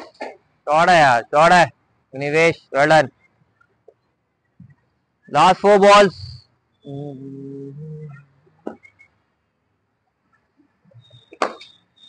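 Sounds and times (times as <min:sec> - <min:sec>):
cricket bat striking ball: 0:11.3 - 0:11.8.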